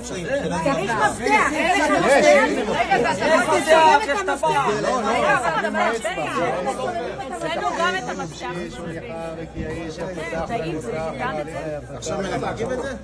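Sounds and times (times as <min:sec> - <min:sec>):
group of people chattering: 0:00.0 - 0:13.0.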